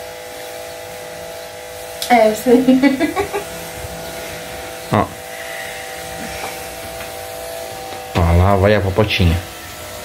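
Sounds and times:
electric motor buzz: 0.0s - 10.0s.

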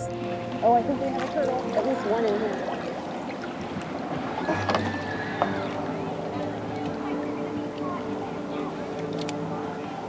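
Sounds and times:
water and net noise: 0.0s - 10.0s.

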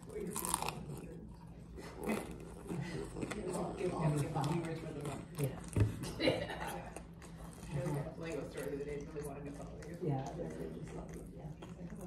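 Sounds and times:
person chewing crunchy food: 0.0s - 6.0s.

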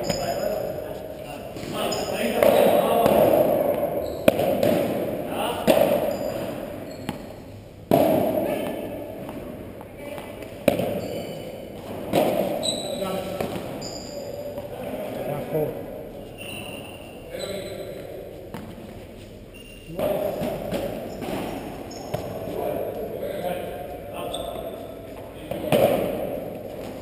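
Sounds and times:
padel ball hits: 2.4s - 6.1s.

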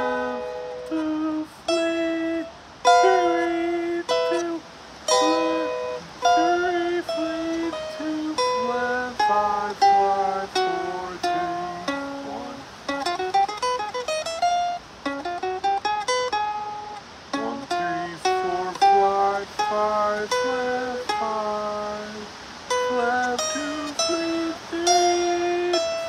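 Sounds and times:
electric-acoustic guitar arpeggios: 0.0s - 26.0s.

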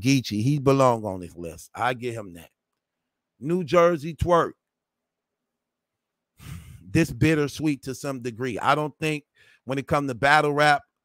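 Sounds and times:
man talking: 0.0s - 2.5s, 3.4s - 4.6s, 6.5s - 10.9s
man breathing in: 6.4s - 6.9s, 9.3s - 9.7s.

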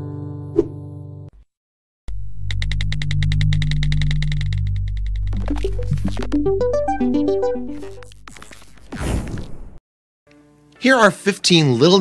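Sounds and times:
fast ticking pulse: 2.1s - 8.0s.

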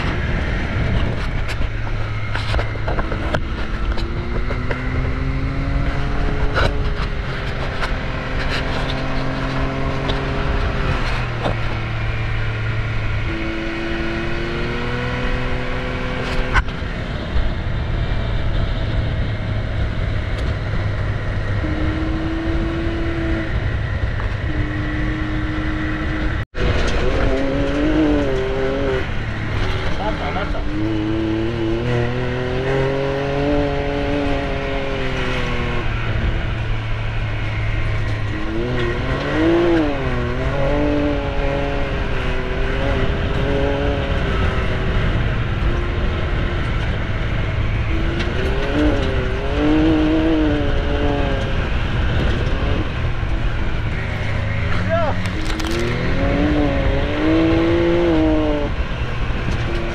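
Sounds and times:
engine revving: 0.0s - 59.9s
low rumble: 0.0s - 59.9s.

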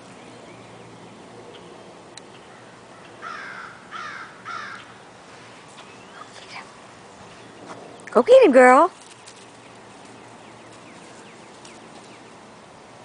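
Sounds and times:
crow cawing: 2.5s - 5.0s.

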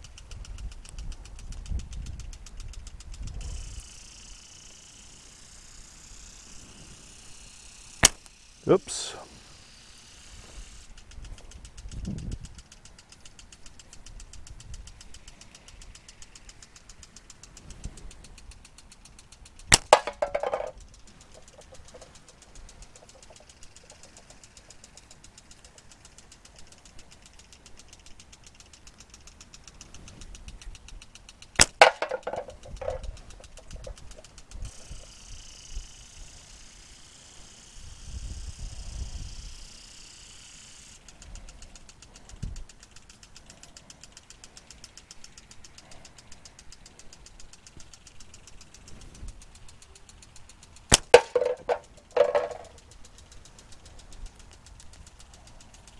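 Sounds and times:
slingshot band snap and ringing: 50.9s - 51.3s.

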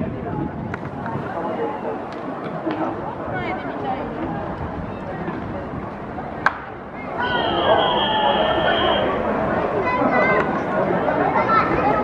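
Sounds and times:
spectators chattering: 0.0s - 12.0s
steady high tone: 7.2s - 9.3s.

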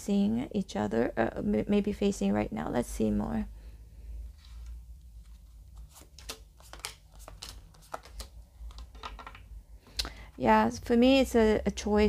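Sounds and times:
cards clicking and slapping on table: 5.8s - 9.5s.

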